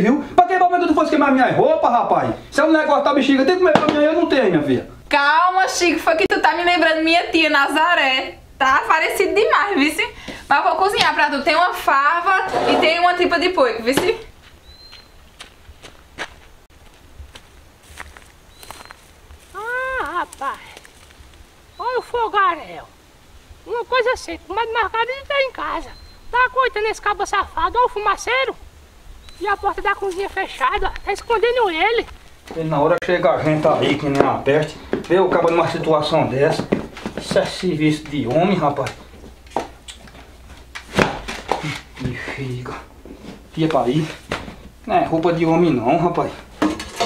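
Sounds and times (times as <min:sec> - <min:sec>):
steps in dry brush: 0:14.3 - 0:21.6, 0:31.8 - 0:32.8
man's high-pitched wordless cry: 0:19.5 - 0:20.7.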